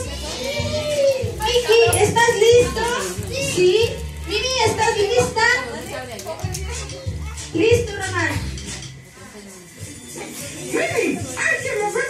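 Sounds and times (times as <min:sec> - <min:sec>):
background music with low beat: 0:00.0 - 0:12.0
children calling and chattering: 0:00.0 - 0:12.0.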